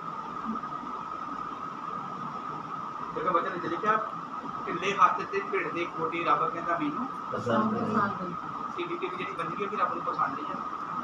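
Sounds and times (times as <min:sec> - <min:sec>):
mid-high hum: 0:00.0 - 0:11.0.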